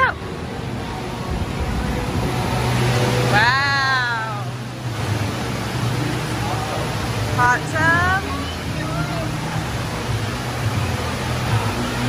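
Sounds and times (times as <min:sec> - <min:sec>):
indoor water park din: 0:00.0 - 0:12.0
low hum: 0:00.0 - 0:12.0.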